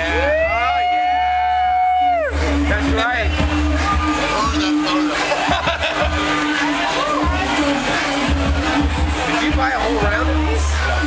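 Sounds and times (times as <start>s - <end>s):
person cheering woooo: 0.0s - 2.4s
bar music: 0.0s - 11.0s
chatter: 0.0s - 11.0s.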